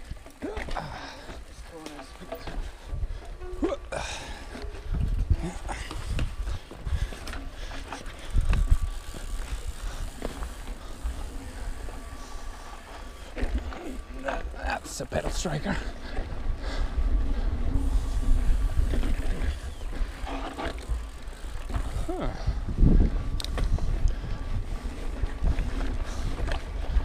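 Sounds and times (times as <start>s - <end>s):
bike clattering over bumps: 0.0s - 27.0s
bike tyre rumble: 0.0s - 27.0s
heavy bike jolts: 0.0s - 27.0s
wind buffeting camera: 2.1s - 27.0s.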